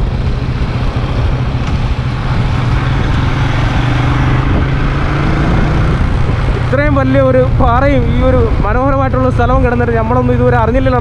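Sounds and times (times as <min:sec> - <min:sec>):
road vehicle rumble: 0:00.0 - 0:11.0.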